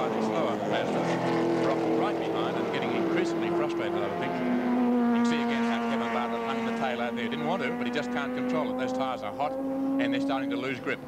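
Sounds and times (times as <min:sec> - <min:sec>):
racing car engine high-revving: 0:00.0 - 0:11.0.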